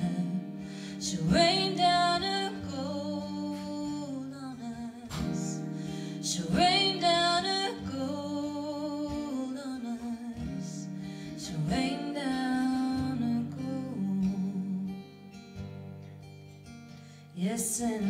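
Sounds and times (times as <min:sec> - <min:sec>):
strummed acoustic guitar: 0:00.0 - 0:18.0.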